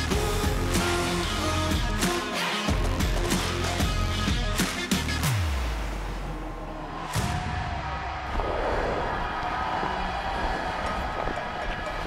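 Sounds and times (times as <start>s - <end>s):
crowd noise: 6.0s - 12.0s.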